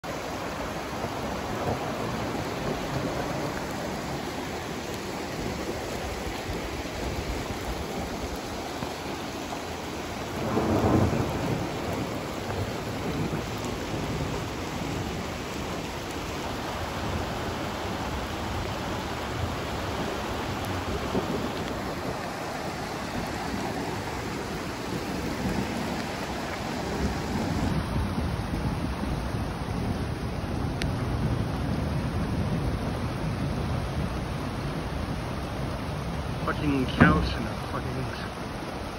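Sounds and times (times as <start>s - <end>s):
floodwater rushing: 0.0s - 38.9s.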